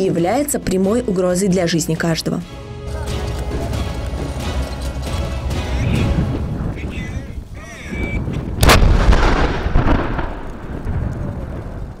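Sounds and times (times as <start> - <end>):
explosion blast: 8.2 - 12.0
rumbling echo: 8.4 - 12.0.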